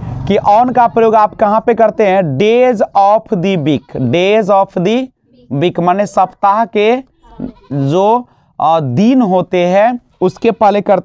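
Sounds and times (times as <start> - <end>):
man speaking: 0.3 - 11.0.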